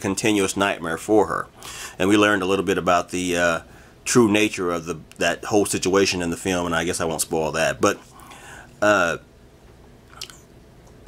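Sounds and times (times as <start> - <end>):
mouth click: 10.1 - 11.0.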